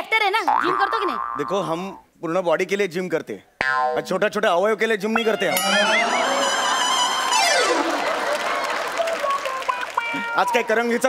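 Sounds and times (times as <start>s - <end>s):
rising comic tone effect: 5.2s - 8.3s.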